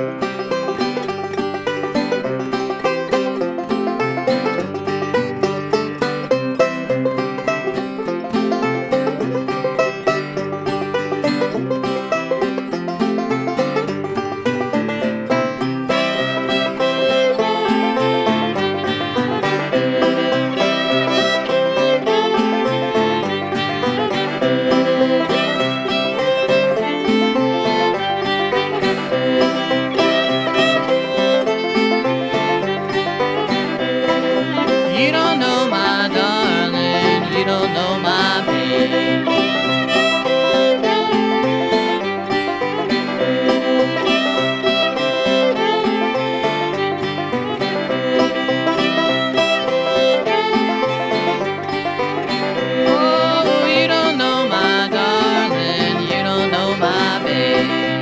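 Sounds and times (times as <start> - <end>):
banjo picking: 0.0 - 58.0
fiddle playing: 0.0 - 58.0.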